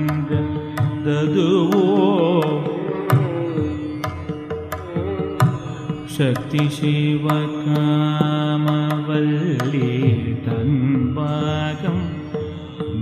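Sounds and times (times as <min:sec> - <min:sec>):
man singing classical vocals: 0:00.0 - 0:13.0.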